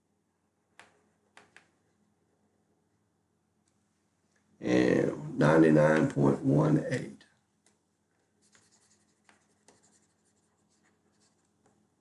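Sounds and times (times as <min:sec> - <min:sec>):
low steady hum: 0:00.0 - 0:12.0
stylus tapping and scratching: 0:07.6 - 0:11.9.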